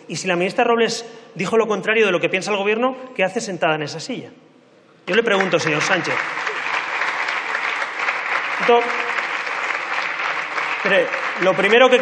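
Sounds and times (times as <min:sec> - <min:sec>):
person giving a speech: 0:05.0 - 0:06.3, 0:08.6 - 0:09.1, 0:10.8 - 0:12.0
crowd applauding: 0:05.1 - 0:12.0.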